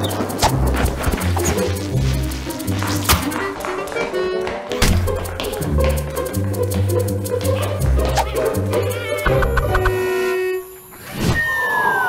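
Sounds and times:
held horn-like tone: 9.6 - 11.0
falling whistle: 9.9 - 12.0.

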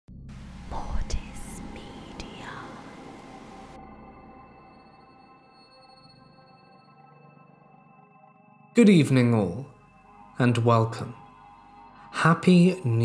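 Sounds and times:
ringing drone: 1.2 - 8.7.

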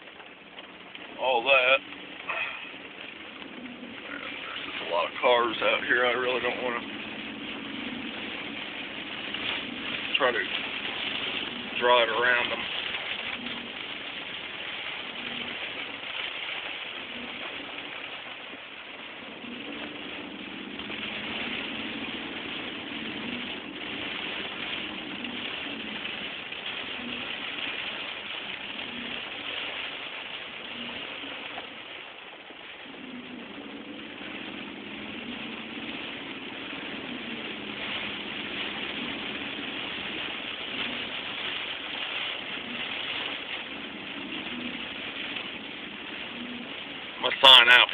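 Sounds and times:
car engine running: 0.0 - 47.9
rain hissing on wet road: 0.0 - 47.9.

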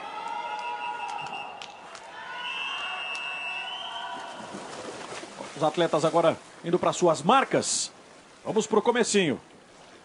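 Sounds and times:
long high whistle: 0.5 - 1.6, 2.3 - 4.4.

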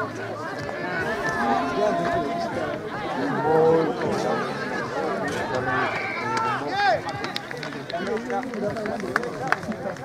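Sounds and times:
people shouting and calling: 0.0 - 7.5.

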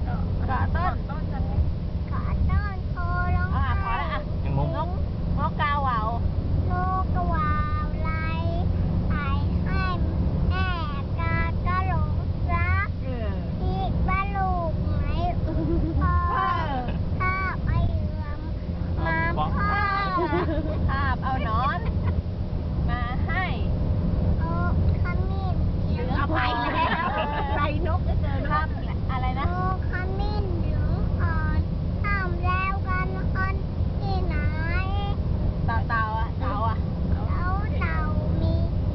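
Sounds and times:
car cabin rumble: 0.0 - 38.9
toddler girl singing: 13.6 - 15.4, 29.4 - 30.6, 31.2 - 35.2
toddler singing: 17.2 - 18.5.

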